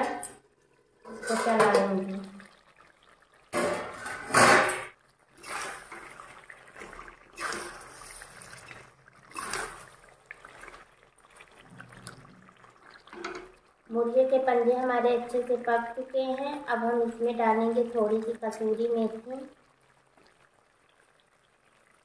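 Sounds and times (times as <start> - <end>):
spatula scraping metal pan: 1.1 - 1.9.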